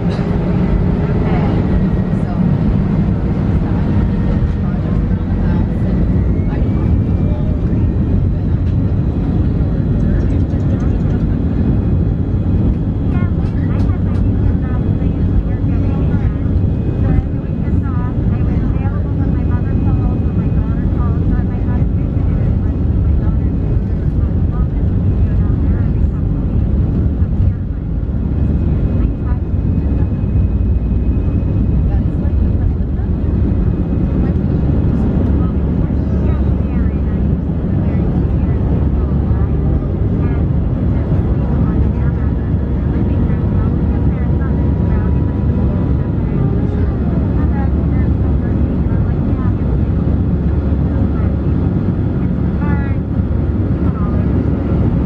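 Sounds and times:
jet engines at takeoff thrust: 0.0 - 55.0.

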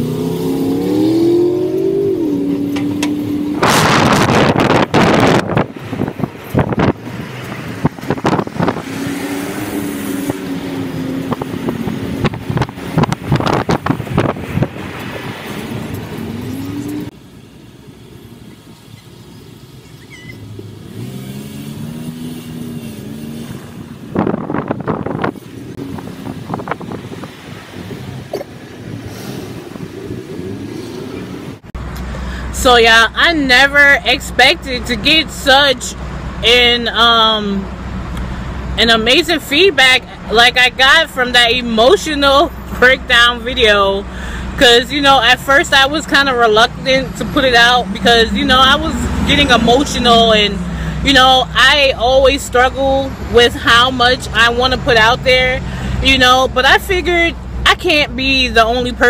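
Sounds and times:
rushes of noise: 0.0 - 17.2, 20.4 - 32.2
car engine accelerating: 0.0 - 32.6, 42.2 - 58.0
road noise: 0.0 - 59.0.

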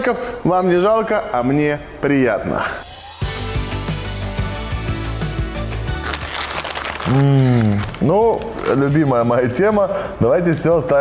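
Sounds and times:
background music: 0.0 - 11.0
snack wrapper crinkling: 5.9 - 9.1.

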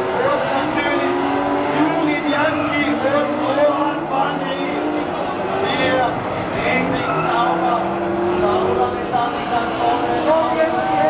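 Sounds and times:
car engines revving: 0.0 - 11.0
spectators talking: 0.0 - 11.0.

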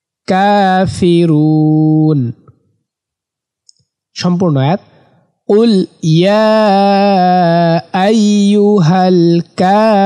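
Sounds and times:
man reciting: 0.2 - 2.6, 4.2 - 10.0.

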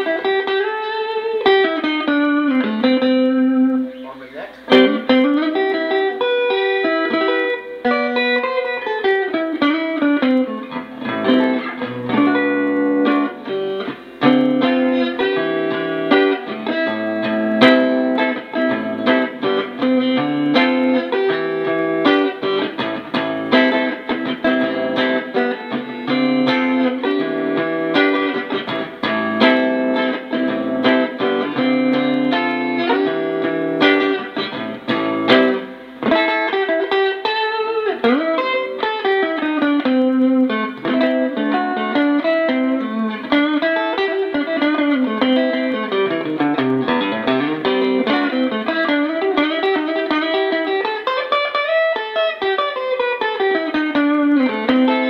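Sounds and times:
electric guitar chords: 0.0 - 55.0
electric guitar gliding single notes: 0.0 - 55.0.

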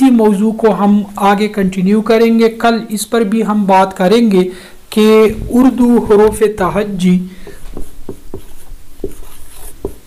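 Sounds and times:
marker writing on whiteboard: 5.3 - 10.0
marker tip tapping board: 7.5 - 10.0.

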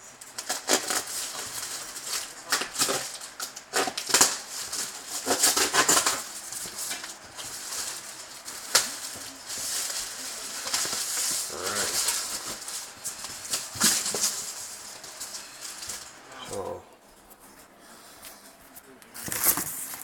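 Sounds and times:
cardboard and plastic crinkling: 0.3 - 16.2, 18.6 - 20.0.

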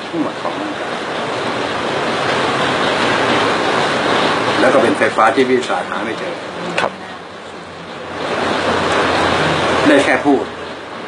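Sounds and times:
steady rushing noise: 0.0 - 11.0.

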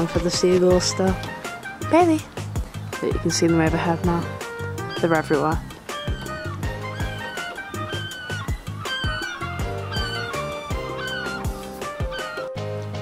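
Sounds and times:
background music with drum beat: 0.0 - 13.0.

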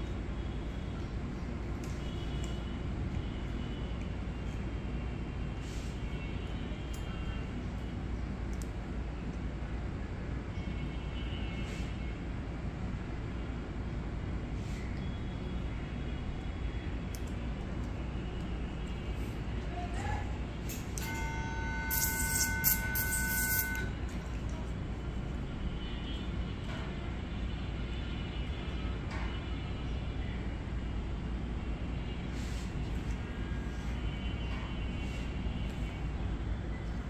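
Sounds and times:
low background hum: 0.0 - 37.0
horn-like tone: 20.7 - 24.7.

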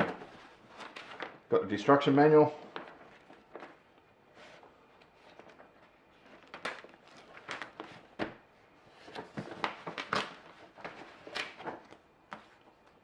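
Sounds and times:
paper pages rustling: 0.0 - 13.0.

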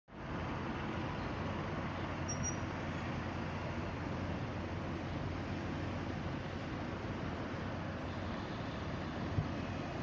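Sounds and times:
street traffic rumble: 0.1 - 10.0.

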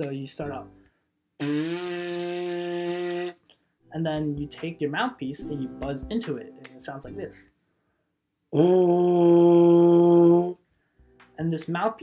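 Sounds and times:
buzzing trombone mouthpiece: 1.4 - 3.4.

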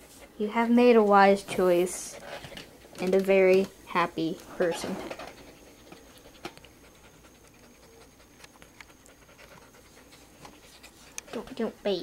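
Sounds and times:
puppy panting: 4.6 - 12.0.

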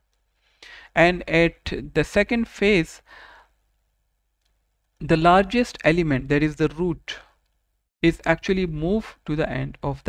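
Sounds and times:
soft breath: 0.3 - 1.0, 3.0 - 3.6.

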